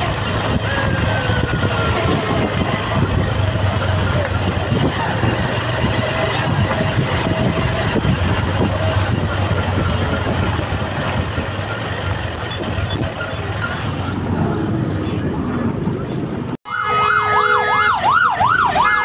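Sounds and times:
indistinct voices: 0:00.0 - 0:16.4
vehicle engines and tyre noise: 0:00.0 - 0:19.0.

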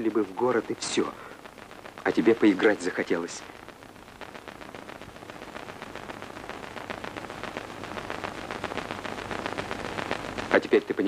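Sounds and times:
dense patter of small ticks: 0:00.0 - 0:11.0.

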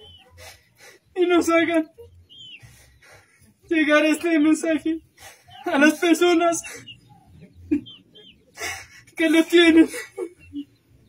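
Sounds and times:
chicken clucking: 0:00.0 - 0:11.0.

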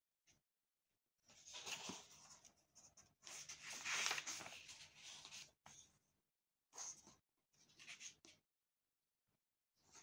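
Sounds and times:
book pages rustling: 0:01.2 - 0:06.0, 0:06.8 - 0:08.4.

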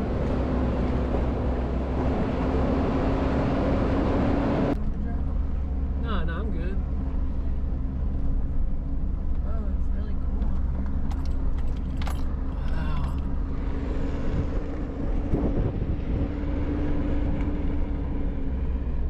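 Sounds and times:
engine and tyre rumble: 0:00.0 - 0:19.0
clicks and rattles: 0:10.4 - 0:13.3.

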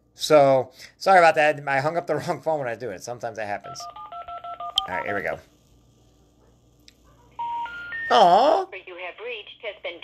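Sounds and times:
rising telephone tones: 0:07.4 - 0:08.4.

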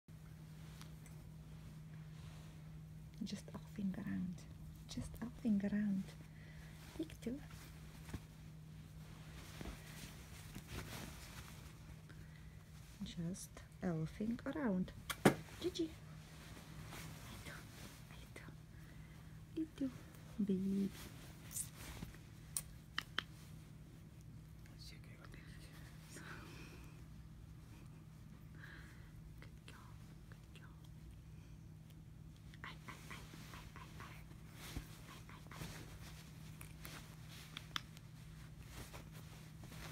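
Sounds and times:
steady low hum: 0:00.1 - 0:39.9
fabric rustling and tapping: 0:07.4 - 0:11.9, 0:33.9 - 0:39.9
dog nibbling clicks: 0:22.5 - 0:23.4, 0:37.5 - 0:38.0.

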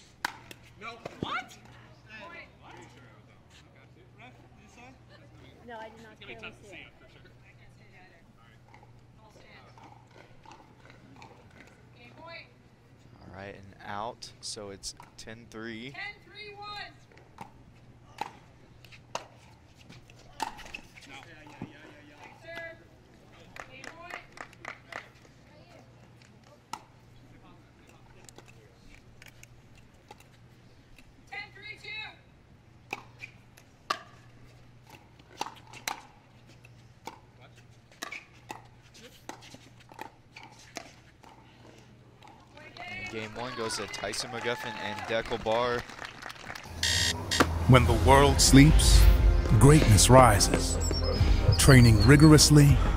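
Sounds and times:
players calling: 0:46.7 - 0:52.9.

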